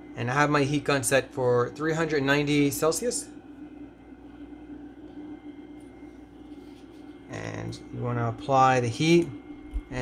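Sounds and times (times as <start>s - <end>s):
heat gun fan blowing: 0.0s - 10.0s.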